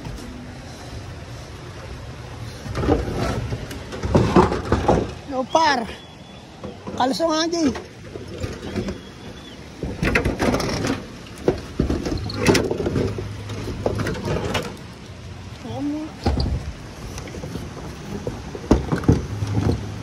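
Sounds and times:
metal sheets clanking and rattling: 0:02.6 - 0:05.2, 0:09.8 - 0:14.8.

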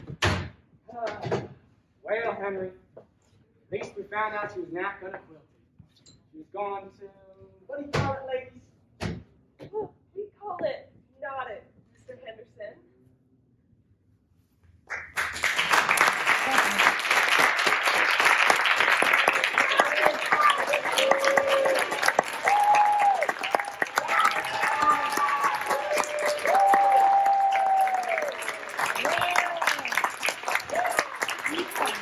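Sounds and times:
audience applauding: 0:14.9 - 0:32.0
cheers: 0:16.2 - 0:32.0.

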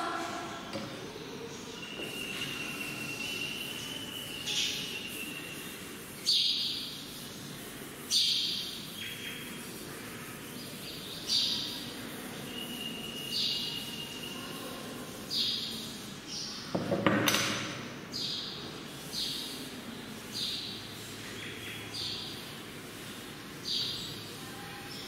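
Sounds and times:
duster swishing on chalkboard: 0:01.9 - 0:16.3, 0:18.6 - 0:24.4.

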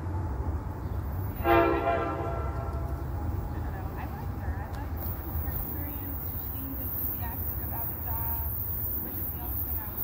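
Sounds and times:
train horn blast: 0:01.3 - 0:02.9.

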